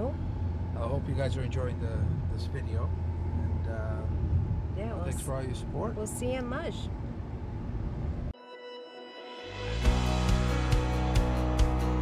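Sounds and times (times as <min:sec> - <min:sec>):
car road and engine rumble: 0:00.0 - 0:08.4
background music sustained notes: 0:08.4 - 0:12.0.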